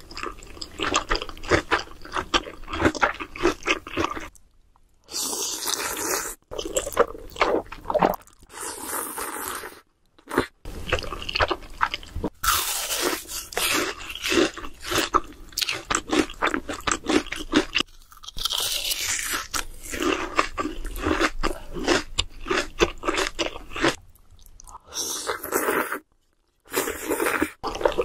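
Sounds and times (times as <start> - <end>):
person chewing crunchy food: 0.0 - 4.5, 5.1 - 28.0.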